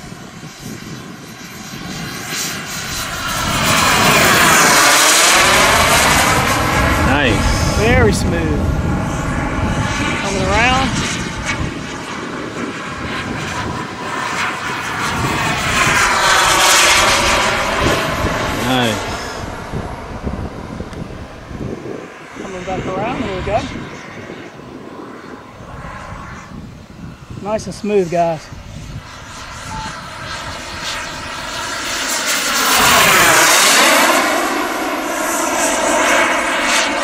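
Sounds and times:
model jet turbine whine: 0.0 - 37.0.

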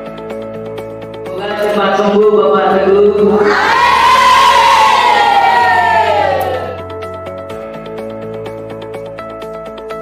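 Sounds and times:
background music: 0.0 - 10.0
children shouting together: 3.4 - 6.8.

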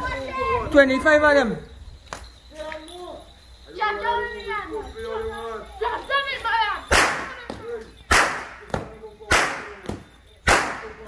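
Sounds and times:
rope whips cracking: 6.9 - 7.4, 8.1 - 11.0.

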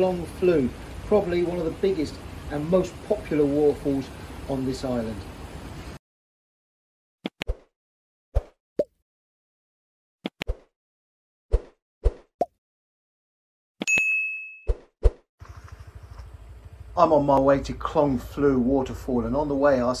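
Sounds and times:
bell ding: 13.8 - 14.7.

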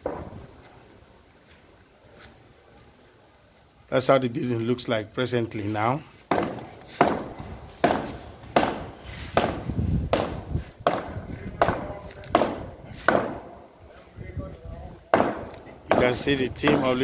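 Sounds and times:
hammer striking chisel on wall: 6.3 - 13.5, 15.1 - 17.0.

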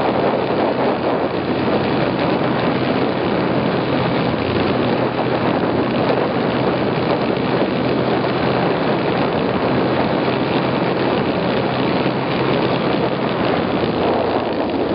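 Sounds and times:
snowmobile engine running: 0.0 - 14.9.

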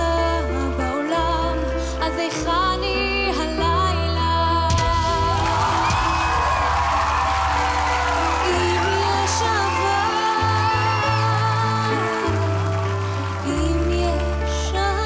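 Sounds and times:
woman singing ballad: 0.0 - 6.8, 8.0 - 15.0.

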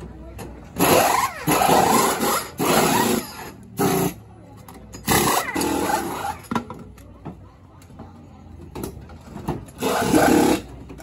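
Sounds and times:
pneumatic wheel guns spinning: 0.7 - 4.2, 4.9 - 6.6, 9.6 - 11.0.

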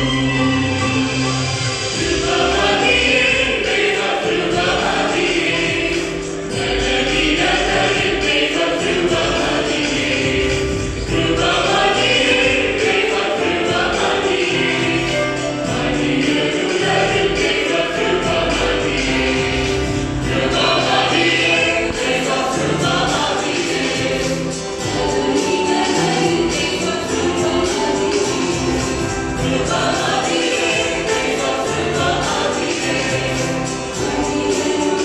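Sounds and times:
electronic keyboard: 0.0 - 35.0
mixed choir singing in harmony: 0.0 - 35.0.

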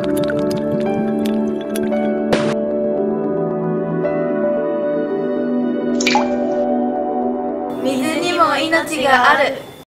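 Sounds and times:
soft ambient music: 0.0 - 9.8
water drop plink: 6.0 - 6.5.

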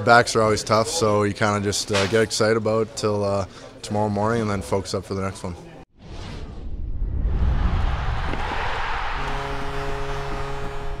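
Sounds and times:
deep whoosh: 6.0 - 9.8.

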